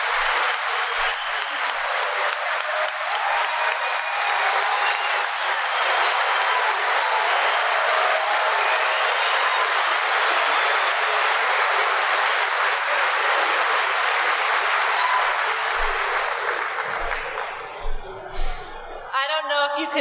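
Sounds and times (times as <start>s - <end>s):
audience applauding: 0.0s - 19.0s.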